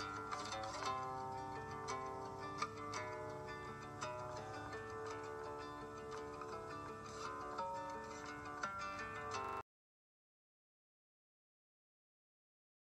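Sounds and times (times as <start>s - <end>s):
plucked string instrument melody: 0.0s - 9.6s.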